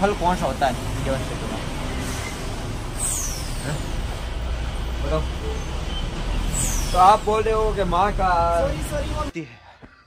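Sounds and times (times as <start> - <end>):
traffic engine rumble: 0.0 - 10.0.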